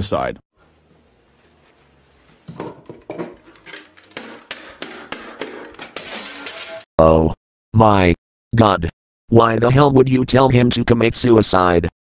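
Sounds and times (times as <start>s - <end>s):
frying pan knocking: 2.4s - 6.8s.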